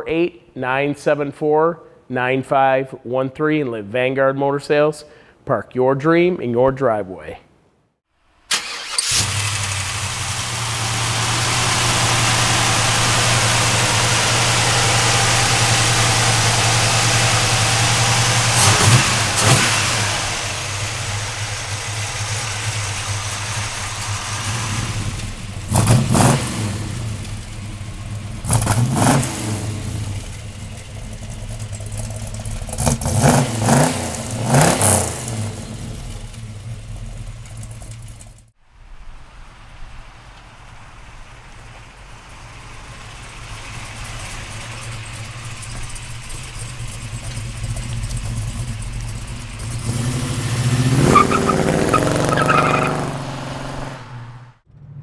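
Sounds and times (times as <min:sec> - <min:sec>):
engine starting: 0:08.5 - 0:11.6
engine idling: 0:08.6 - 0:38.5, 0:40.4 - 0:51.0
engine revving in short blips: 0:23.9 - 0:38.4.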